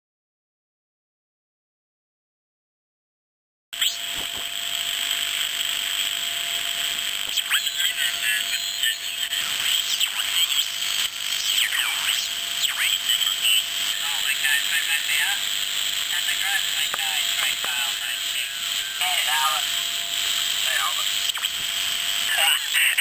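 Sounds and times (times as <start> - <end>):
radio hiss: 3.8 - 23.0.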